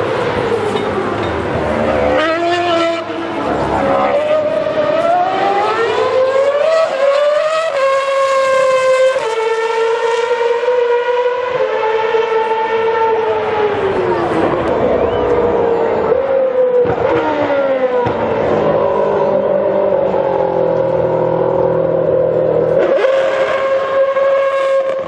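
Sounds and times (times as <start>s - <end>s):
racing car engine screaming: 12.8s - 25.0s.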